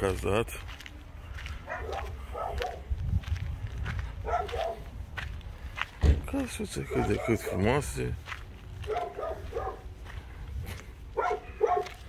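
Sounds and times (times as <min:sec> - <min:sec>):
footsteps on dirt road: 0:00.0 - 0:12.0
dog barking: 0:01.6 - 0:02.9, 0:04.2 - 0:04.9, 0:06.8 - 0:07.8, 0:08.8 - 0:09.9, 0:11.2 - 0:12.0.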